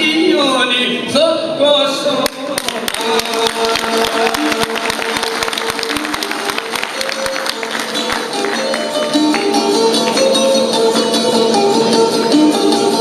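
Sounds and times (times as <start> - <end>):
strummed long-necked lute: 3.1 - 13.0.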